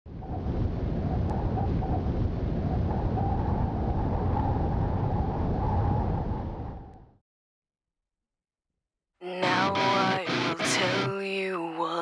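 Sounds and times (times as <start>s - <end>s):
wind buffeting microphone: 0.1s - 7.2s.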